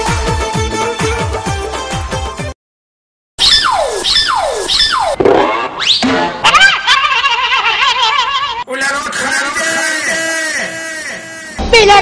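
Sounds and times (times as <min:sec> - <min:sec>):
whistle-like tones sliding down: 0:03.4 - 0:05.2.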